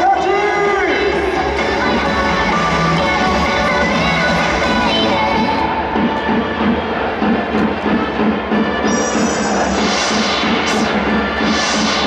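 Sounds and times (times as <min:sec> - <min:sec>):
crowd noise: 0:00.0 - 0:12.0
music over stadium speakers: 0:00.0 - 0:12.0
pulsing beat: 0:01.1 - 0:12.0.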